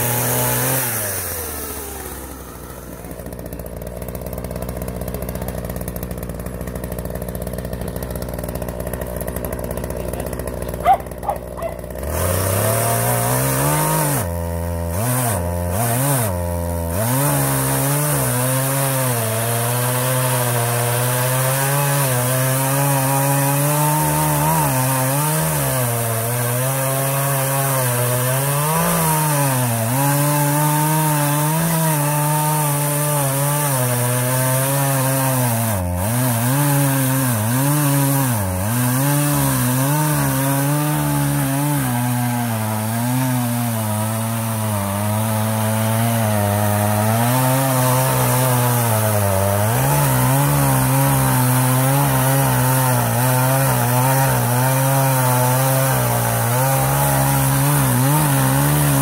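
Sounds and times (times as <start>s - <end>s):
chainsaw cutting log: 0.0s - 59.0s.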